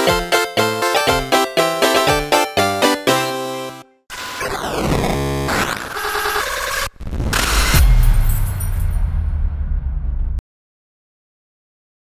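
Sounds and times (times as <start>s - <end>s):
music: 0.0s - 4.0s.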